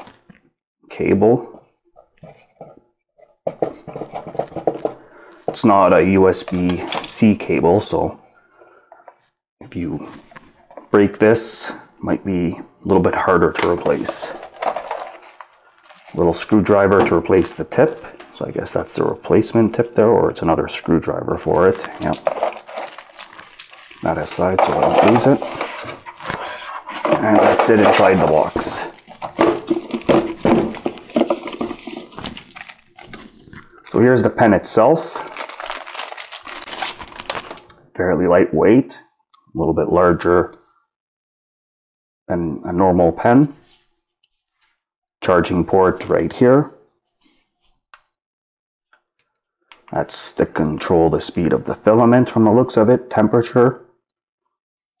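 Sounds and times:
plastic cable clicking and rustling: 13.6s - 17.2s, 21.6s - 26.4s, 27.0s - 34.0s, 35.2s - 37.8s
cardboard box being handled: 14.7s - 16.2s, 21.9s - 26.1s.

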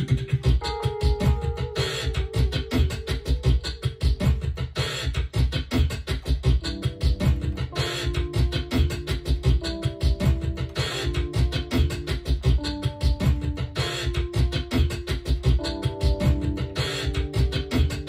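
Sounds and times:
electronic beat with low kick: 0.0s - 18.0s.

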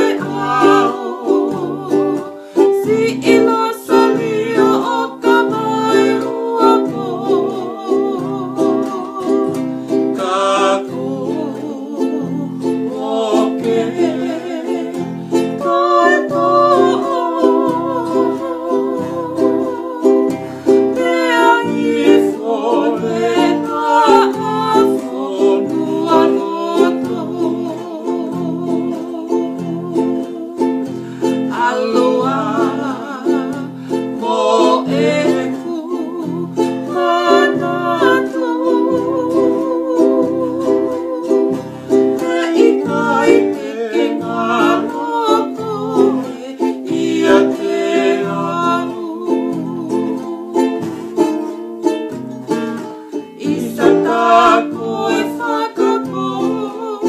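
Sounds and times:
acoustic guitar: 0.0s - 57.0s
strummed ukulele: 0.0s - 57.0s
woman singing with vibrato: 0.0s - 57.0s.

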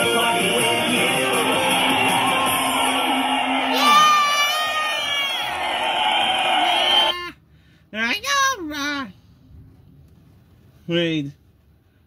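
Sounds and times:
crowd cheering: 0.4s - 7.3s
children shouting: 1.4s - 7.3s
person whooping: 1.5s - 7.4s.

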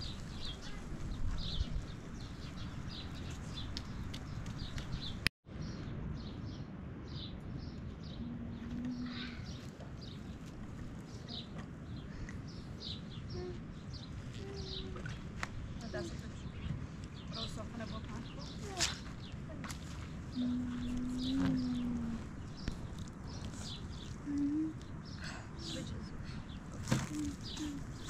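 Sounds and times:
small birds chirping: 0.0s - 28.0s
low background rumble: 3.8s - 28.0s.

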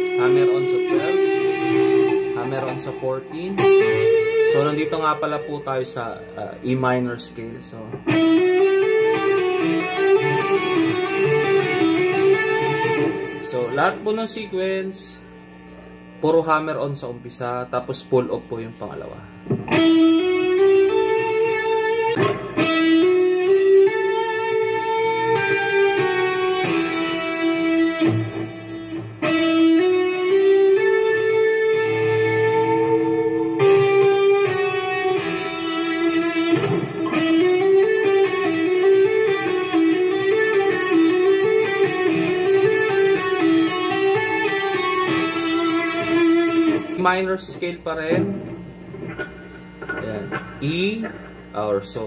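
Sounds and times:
electric guitar legato playing: 0.0s - 52.0s.

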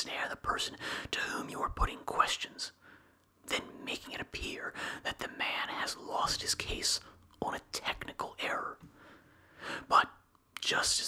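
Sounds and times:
man whispering: 0.0s - 2.8s, 3.4s - 8.8s, 9.8s - 11.0s.

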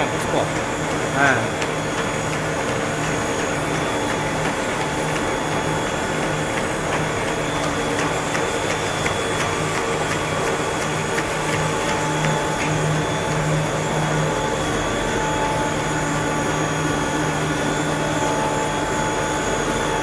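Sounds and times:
low pulsing hum: 0.0s - 20.0s
machinery mechanical drone: 0.0s - 20.0s.

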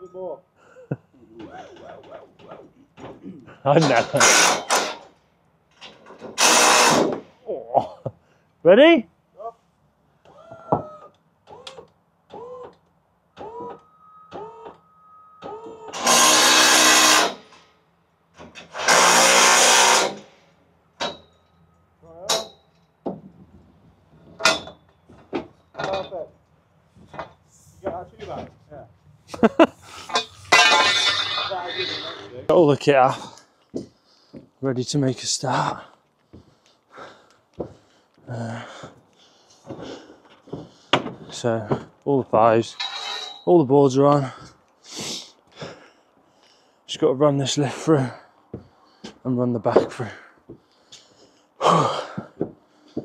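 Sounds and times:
handheld power tool burst: 4.0s - 5.0s, 6.3s - 7.3s, 15.9s - 17.6s, 18.6s - 20.4s
metal tube clanging and ringing: 13.5s - 16.4s, 21.0s - 21.7s, 24.4s - 25.0s, 30.0s - 32.4s, 42.7s - 43.5s
voices: 30.8s - 33.4s.

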